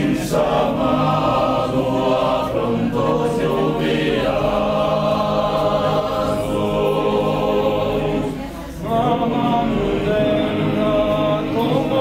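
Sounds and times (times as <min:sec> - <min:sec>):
male choir singing a cappella: 0:00.0 - 0:12.0.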